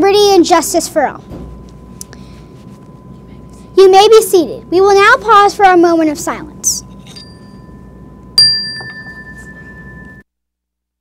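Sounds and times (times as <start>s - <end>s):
chime ringing: 6.7s - 10.2s.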